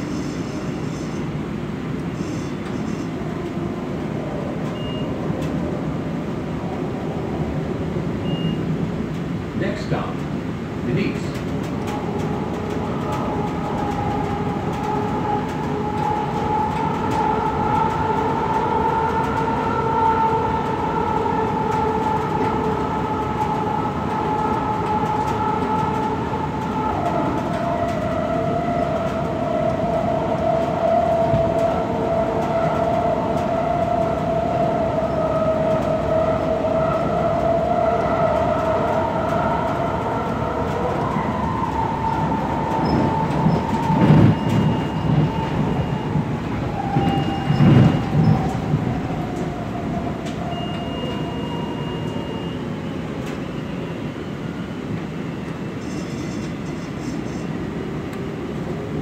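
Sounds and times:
light rail car rumbling and whining: 0.0s - 59.0s.

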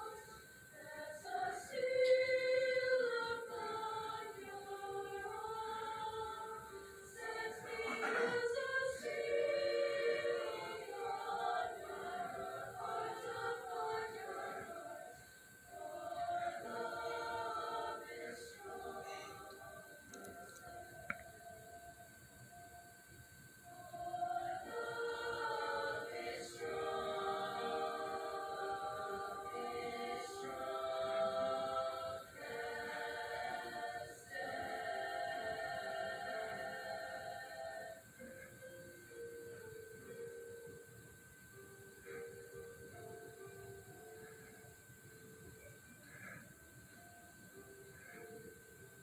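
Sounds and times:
women's choir singing through speakers: 0.0s - 22.1s, 23.6s - 38.1s
high-pitched whine: 0.0s - 49.0s.

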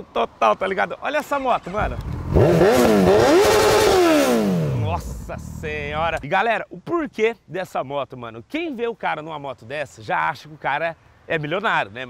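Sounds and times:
motorcycle engine revving: 1.8s - 6.2s.

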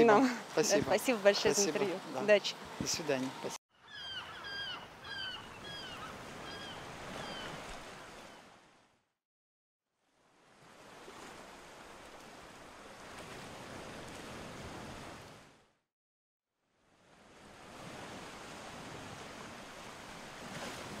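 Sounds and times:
ocean waves washing: 0.0s - 3.6s, 10.3s - 15.7s, 16.8s - 21.0s.

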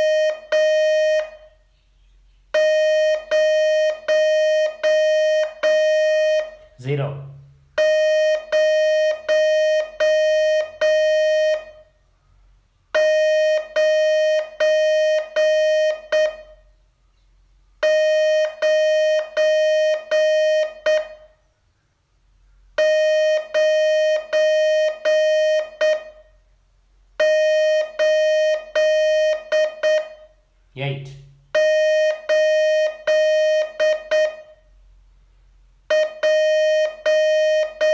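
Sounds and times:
morse code tone: 0.0s - 1.6s, 2.6s - 11.9s, 13.0s - 16.7s, 17.8s - 21.4s, 22.8s - 26.4s, 27.2s - 34.7s, 35.9s - 37.9s.

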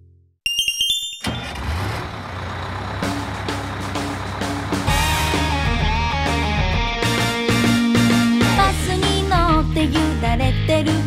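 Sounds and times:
bright chime notes: 0.5s - 1.5s
bus engine rumble: 1.2s - 6.9s
held musical chord: 2.9s - 8.4s.

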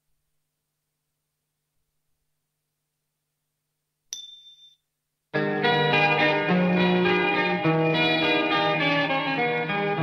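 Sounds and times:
bell-like ding: 4.1s - 4.9s.

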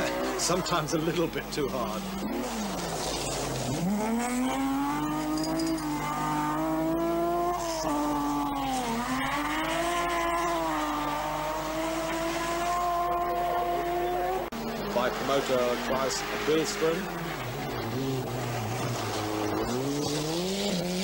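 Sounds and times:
rally car engine revving high: 0.0s - 21.0s.

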